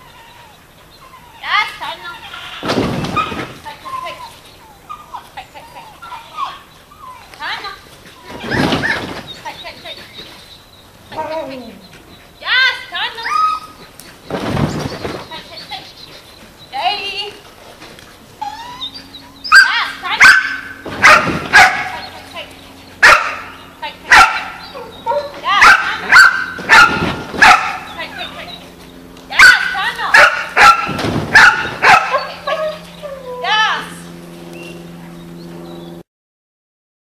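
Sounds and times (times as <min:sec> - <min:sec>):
dog barking: 0:19.5 - 0:22.1, 0:23.0 - 0:27.9, 0:29.4 - 0:32.7.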